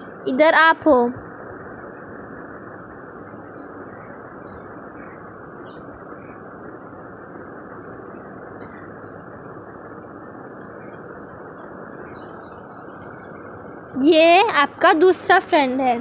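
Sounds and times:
low background rush: 0:00.0 - 0:16.0.

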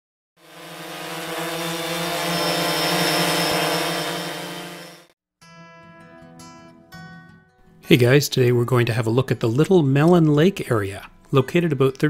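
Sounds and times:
motor hum with high whine: 0:00.4 - 0:05.1.

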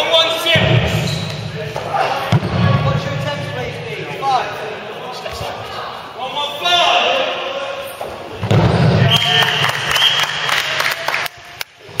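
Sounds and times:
echoing sports hall din: 0:00.0 - 0:12.0.

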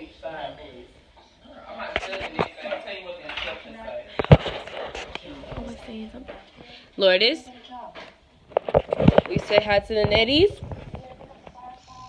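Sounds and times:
faint background talk: 0:00.0 - 0:12.0.

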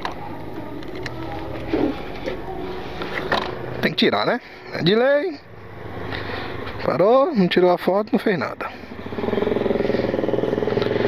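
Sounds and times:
motorcycle engine idling: 0:08.7 - 0:11.0.

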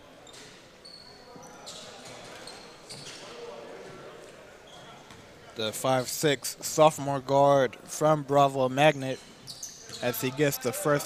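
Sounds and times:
faint voices in echoing hall: 0:00.0 - 0:11.0.

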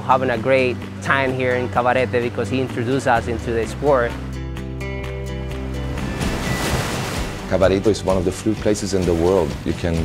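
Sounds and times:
ocean wave breaking over rocks: 0:05.8 - 0:07.6.

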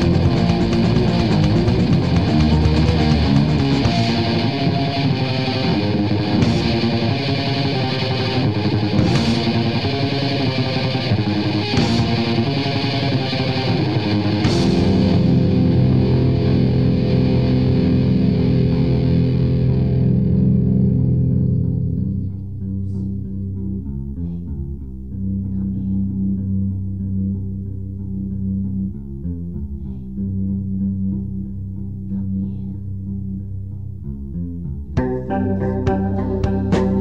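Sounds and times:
rock band with distorted guitar: 0:00.0 - 0:22.0, 0:35.0 - 0:37.0.

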